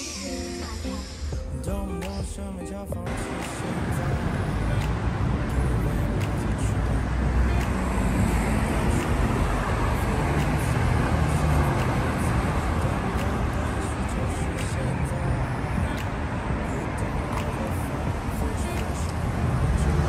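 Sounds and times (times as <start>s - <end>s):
steady low traffic rumble: 3.0s - 20.0s
cars driving past: 3.1s - 20.0s.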